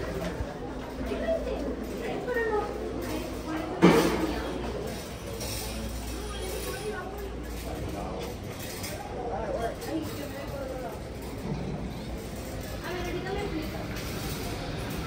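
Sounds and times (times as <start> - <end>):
faint indistinct talking: 0.0 - 15.0.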